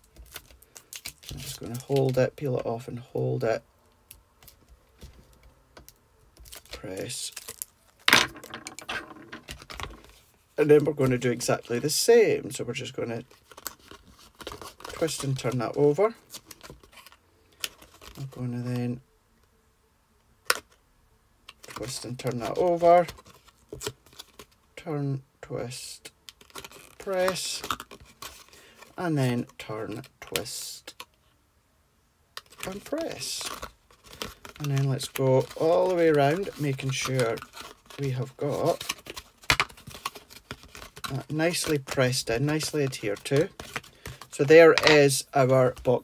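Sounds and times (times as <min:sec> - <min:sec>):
card handling: 0:04.4 - 0:12.0, 0:13.2 - 0:18.4, 0:32.4 - 0:46.0.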